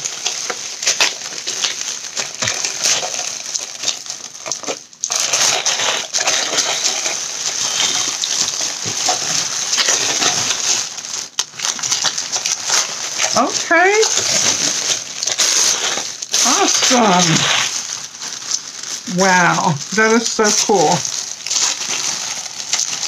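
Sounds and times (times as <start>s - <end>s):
packaging crinkling and rustling: 0.0s - 23.0s.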